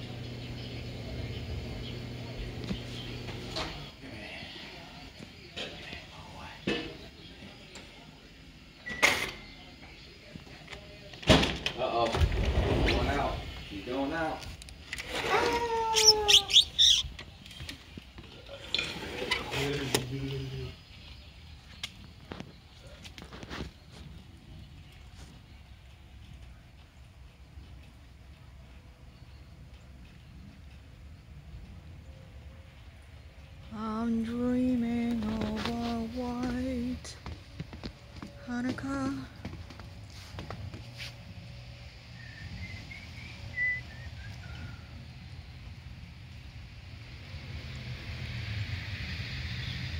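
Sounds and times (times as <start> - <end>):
small birds chirping: 0.0 - 8.8, 15.5 - 18.6, 19.2 - 47.3
person whistling a tune: 42.2 - 44.7.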